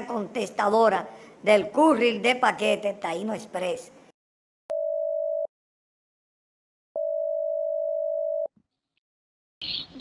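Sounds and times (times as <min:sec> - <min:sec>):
telephone ringback tone: 0:04.7 - 0:05.5, 0:07.0 - 0:08.5.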